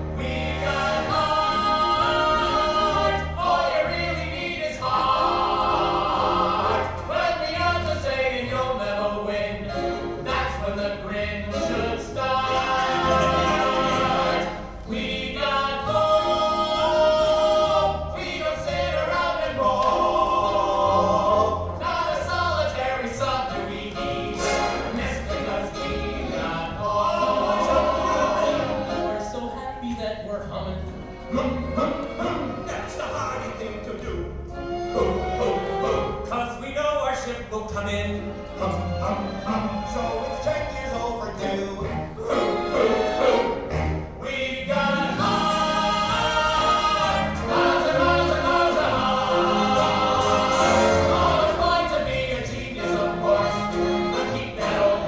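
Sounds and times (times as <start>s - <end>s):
group singing show tune: 0.0s - 30.4s, 31.2s - 55.0s
instrumental accompaniment: 0.0s - 36.5s, 37.7s - 55.0s.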